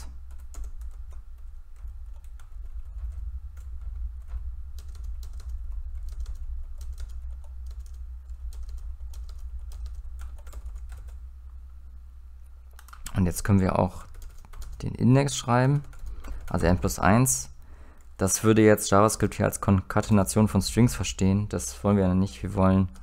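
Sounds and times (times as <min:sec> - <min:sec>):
steady low hum: 0:00.0 - 0:23.0
typing on computer keyboard: 0:00.3 - 0:11.2, 0:12.7 - 0:13.2, 0:14.0 - 0:14.8, 0:15.6 - 0:16.8.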